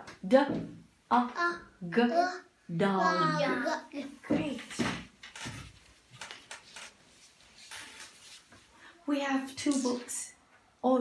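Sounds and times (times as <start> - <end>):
faint rustling: 4.0 - 9.0.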